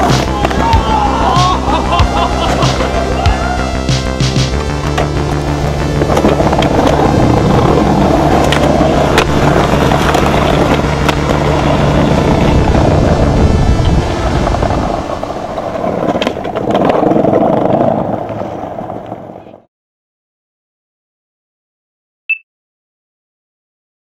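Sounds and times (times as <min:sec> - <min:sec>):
synth music with held notes: 0:00.0 - 0:15.6
skateboard wheels rolling on paving: 0:00.0 - 0:19.7.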